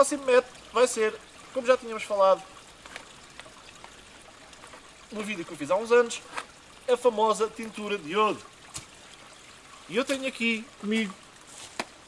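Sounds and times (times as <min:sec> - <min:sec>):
stream running water: 0:00.0 - 0:12.0.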